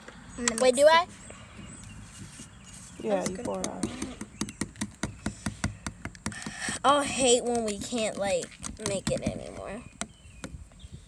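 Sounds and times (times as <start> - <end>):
light plastic taps and clicks: 3.2 - 6.8.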